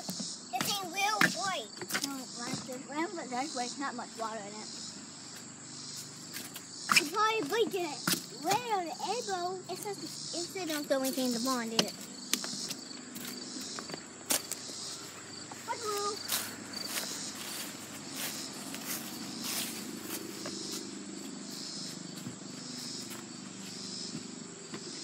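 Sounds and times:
insects chirping: 0:00.0 - 0:25.0
footsteps on grass: 0:04.0 - 0:25.0.

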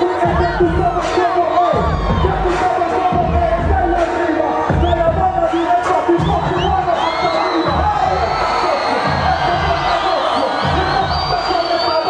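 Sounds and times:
crowd cheering: 0:00.0 - 0:12.0
hip hop music over pa: 0:00.0 - 0:12.0.

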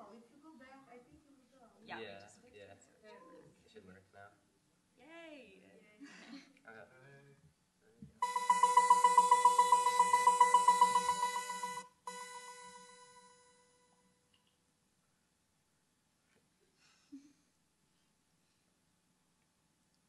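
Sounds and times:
pulsing electronic tone: 0:08.2 - 0:13.5.

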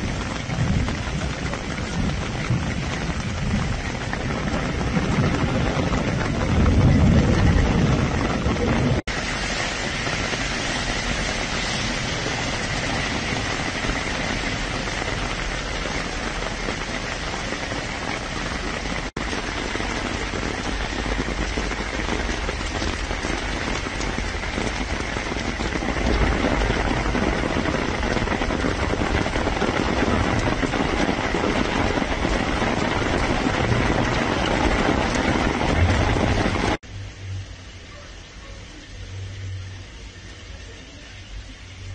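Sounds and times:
steady rain on a street: 0:00.0 - 0:41.9.

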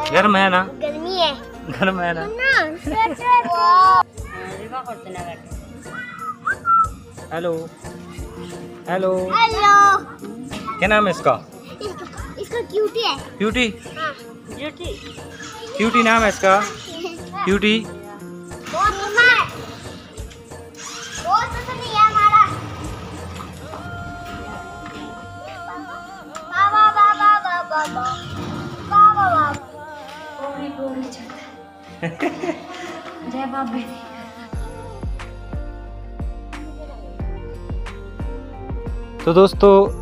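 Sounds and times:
background music: 0:00.0 - 0:40.0
children's excited voices and squeals: 0:02.3 - 0:07.0, 0:07.8 - 0:20.1, 0:20.7 - 0:22.9, 0:24.6 - 0:31.5
child squealing: 0:05.9 - 0:06.4.

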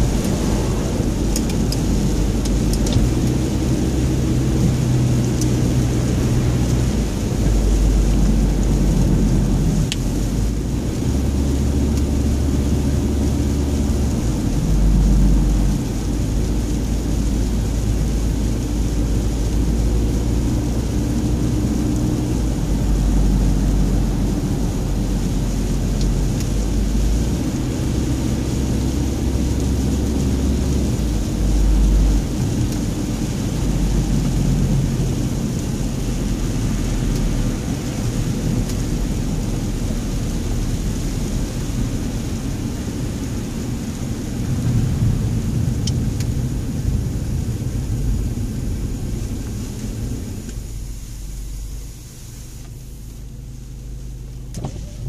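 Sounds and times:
tyres on wet road: 0:00.0 - 0:55.0.

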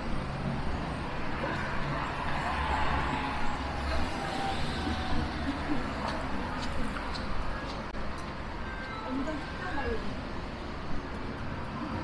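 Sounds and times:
cars and buses passing: 0:00.0 - 0:12.0
road traffic rumble: 0:00.0 - 0:12.0.

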